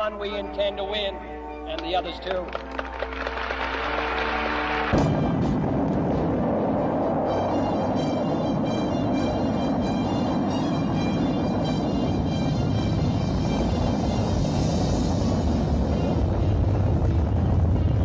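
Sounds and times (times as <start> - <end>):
music playing: 0.0 - 18.0
rocket engines rumbling: 0.0 - 18.0.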